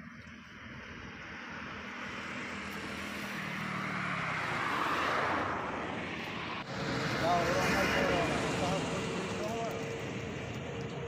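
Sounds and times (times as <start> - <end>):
steady traffic noise: 0.0 - 11.0
vehicle passing on highway: 0.0 - 11.0
voices: 7.0 - 11.0.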